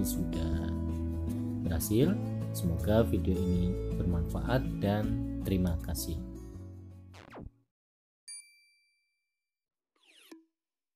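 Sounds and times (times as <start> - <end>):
high bell-like ding: 8.3 - 9.3.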